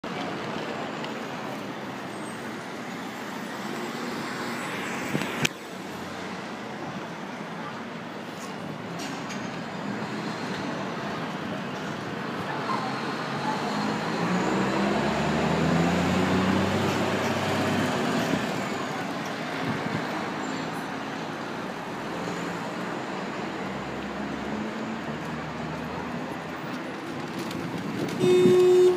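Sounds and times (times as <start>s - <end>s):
city street traffic: 0.0s - 28.9s
vehicle engine passing close: 13.8s - 18.7s.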